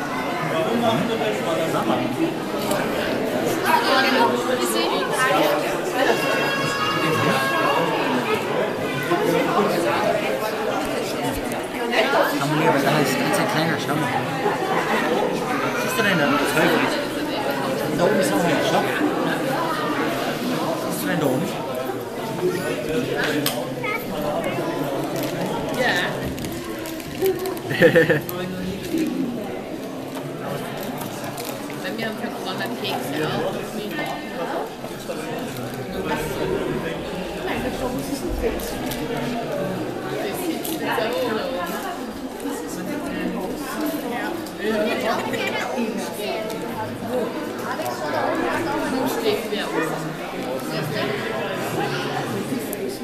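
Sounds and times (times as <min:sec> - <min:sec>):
people chattering: 0:00.0 - 0:53.0
people talking indistinctly: 0:00.0 - 0:53.0.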